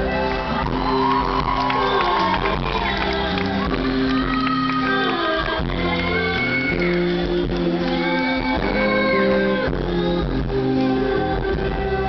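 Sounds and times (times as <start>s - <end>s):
live pop rock band: 0.0s - 12.0s
person singing: 0.0s - 12.0s.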